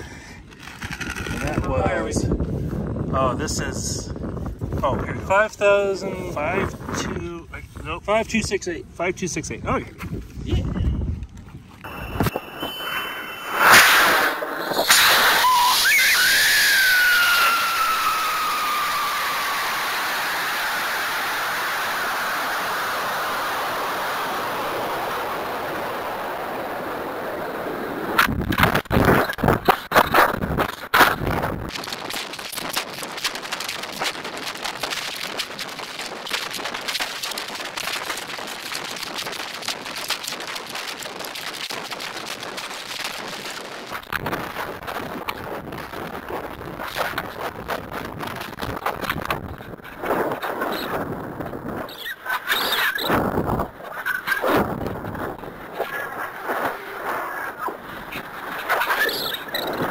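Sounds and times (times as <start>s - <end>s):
wind buffeting: 0.0s - 40.0s, 41.8s - 59.9s
sharp bangs: 11.9s - 16.2s
falling whistle: 11.9s - 20.9s
rocket motor rush: 11.9s - 29.5s.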